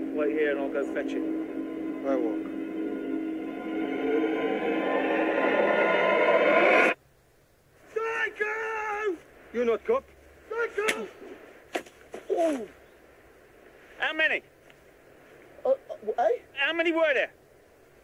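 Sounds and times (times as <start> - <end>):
film soundtrack swell: 0.0 - 7.0.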